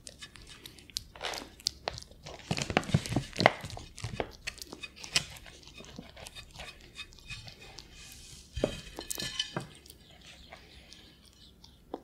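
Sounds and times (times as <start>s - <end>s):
ferret crunching dry kibble: 0.0s - 12.0s.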